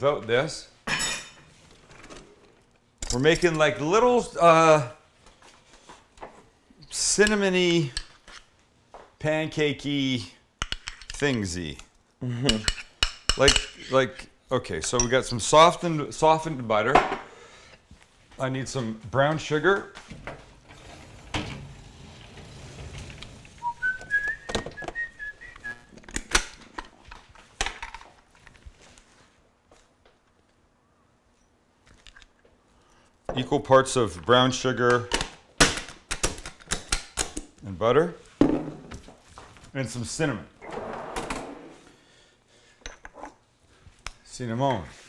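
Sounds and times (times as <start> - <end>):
person whistling a tune: 23.6 - 25.9.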